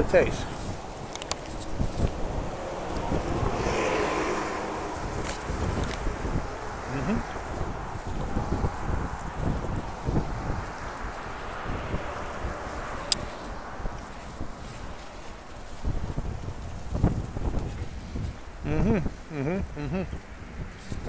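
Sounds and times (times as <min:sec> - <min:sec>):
wind gusting over microphone: 0:00.0 - 0:21.0.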